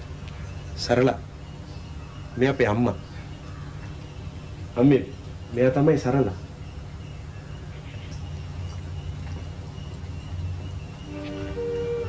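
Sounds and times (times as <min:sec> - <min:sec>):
low steady hum: 0:00.0 - 0:12.0
faint hiss: 0:10.8 - 0:12.0.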